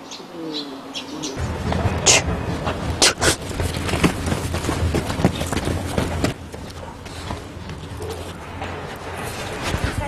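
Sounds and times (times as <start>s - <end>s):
low rumble: 1.4s - 10.0s.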